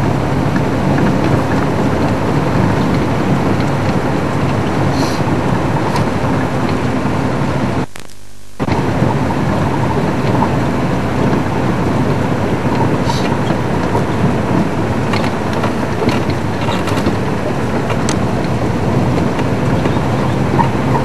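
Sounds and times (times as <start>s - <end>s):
wind buffeting microphone: 0.0s - 7.8s, 8.6s - 21.0s
vehicle engine rumble: 0.0s - 21.0s.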